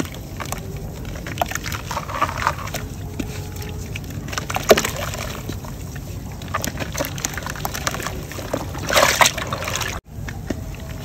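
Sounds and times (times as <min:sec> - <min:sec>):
dry mud crunching by hand: 0:00.0 - 0:11.0
mud crack: 0:00.0 - 0:11.0.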